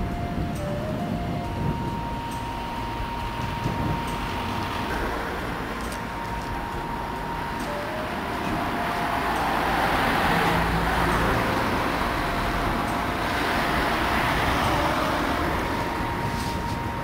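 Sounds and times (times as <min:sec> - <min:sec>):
cars driving past: 0:00.0 - 0:17.0.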